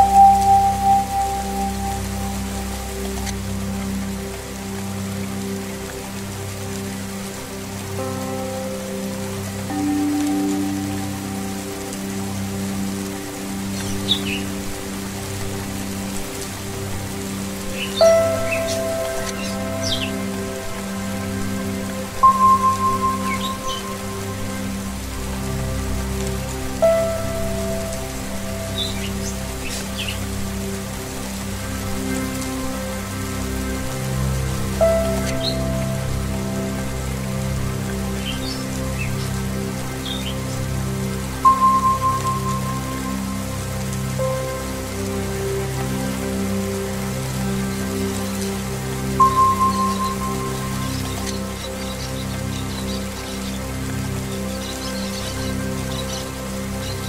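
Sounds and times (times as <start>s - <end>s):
singing bowls ringing: 0.0s - 2.8s, 22.2s - 24.6s
slow meditative music: 0.0s - 57.0s
steady rain falling: 0.0s - 57.0s.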